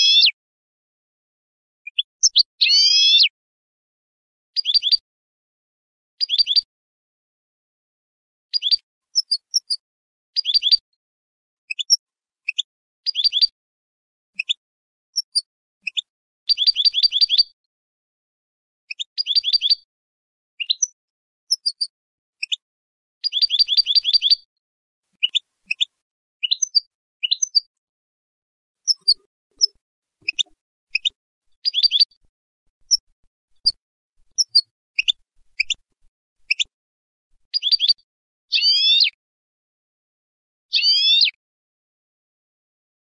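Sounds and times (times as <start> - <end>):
high bird call notes: 0.0 - 0.4, 1.9 - 3.3, 37.6 - 39.2, 40.7 - 41.4
goldfinch twittering: 2.0 - 3.3, 28.9 - 32.2.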